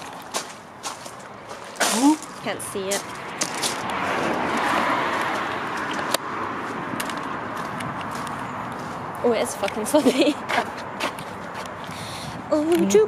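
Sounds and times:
car passing by: 0:02.6 - 0:10.5.

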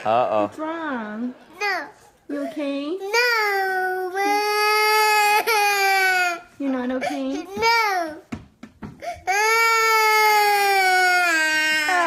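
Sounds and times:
toddler crying: 0:03.1 - 0:06.5, 0:09.0 - 0:12.0.

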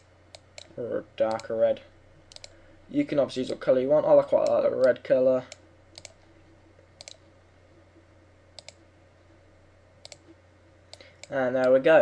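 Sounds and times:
low steady hum: 0:00.0 - 0:12.0
faint computer mouse clicks: 0:02.3 - 0:02.6, 0:05.9 - 0:06.2, 0:07.0 - 0:07.2, 0:08.6 - 0:08.8, 0:10.0 - 0:10.3.

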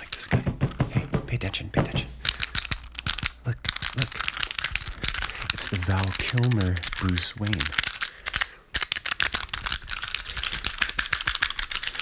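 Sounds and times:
man talking: 0:00.0 - 0:02.2, 0:05.3 - 0:07.8
plastic figure clicking and crackling: 0:02.2 - 0:12.0.

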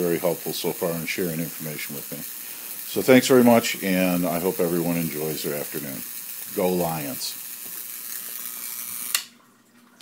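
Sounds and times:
steady high hiss: 0:00.0 - 0:09.3.

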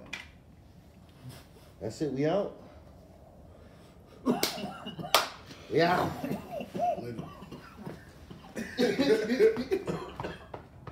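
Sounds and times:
man speaking: 0:05.7 - 0:07.6.

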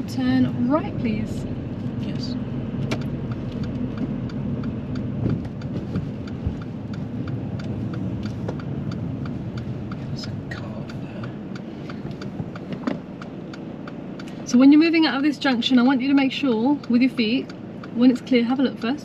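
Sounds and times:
engine and tyre hum: 0:00.0 - 0:19.0
turn indicator ticking: 0:00.0 - 0:19.0.

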